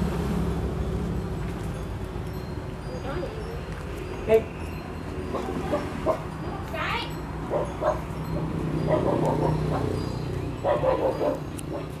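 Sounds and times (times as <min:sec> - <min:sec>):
dog whimpering and yipping: 0:08.8 - 0:12.0.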